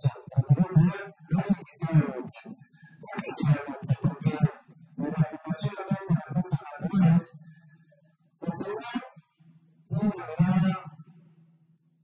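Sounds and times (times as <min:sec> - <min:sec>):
man speaking over a pa: 0:00.0 - 0:07.3, 0:08.4 - 0:09.0, 0:09.9 - 0:10.9.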